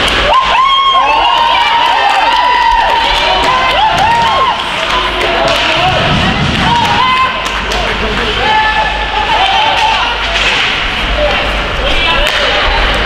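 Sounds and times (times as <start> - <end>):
hockey sticks and puck clacking: 4.6 - 5.9, 9.2 - 13.0.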